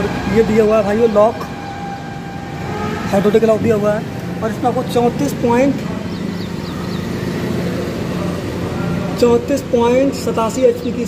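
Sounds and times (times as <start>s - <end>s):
tractor diesel engine idling: 0.0s - 11.0s
high bird chirps: 5.8s - 7.6s.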